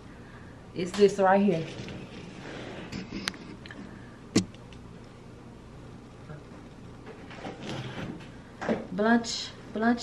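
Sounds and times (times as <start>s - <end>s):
woman speaking: 0.8s - 1.7s, 8.9s - 10.0s.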